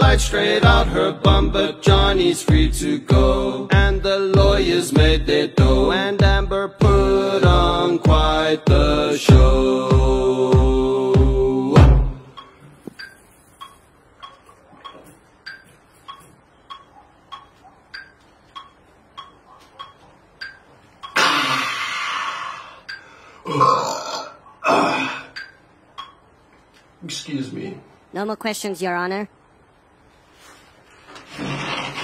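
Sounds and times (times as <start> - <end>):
song with beat: 0.0 - 13.2
man belching loudly: 21.1 - 22.5, 23.4 - 25.4.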